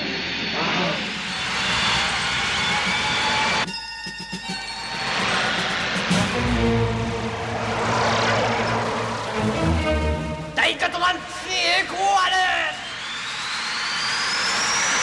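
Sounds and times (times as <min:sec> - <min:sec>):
dramatic background music: 0:01.5 - 0:10.8
spaceship engine rushing past: 0:05.1 - 0:10.5.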